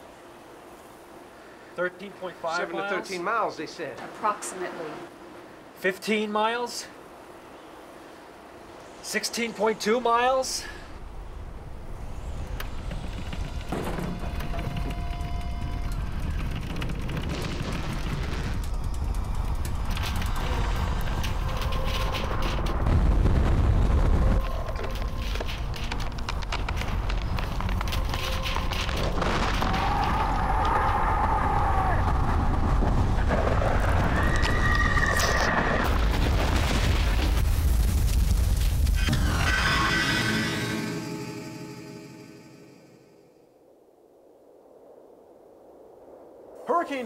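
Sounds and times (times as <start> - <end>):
deep blast rumble: 11.0 - 25.3
background music tones: 11.6 - 29.6.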